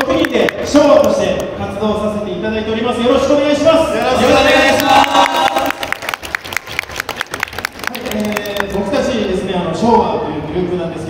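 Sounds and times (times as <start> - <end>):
audience applauding: 4.0 - 9.0.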